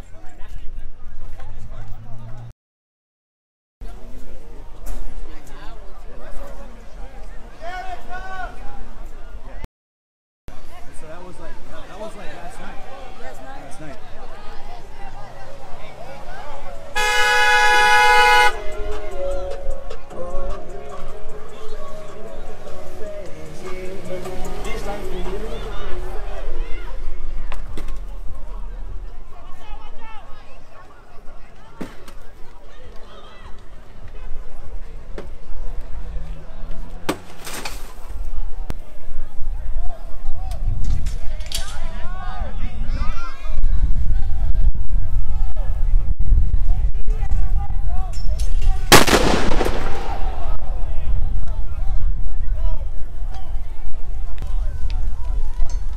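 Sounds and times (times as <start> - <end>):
voices: 10.5 - 55.9
car horn blast: 17.0 - 18.7
sharp cracks and bangs: 48.9 - 50.6.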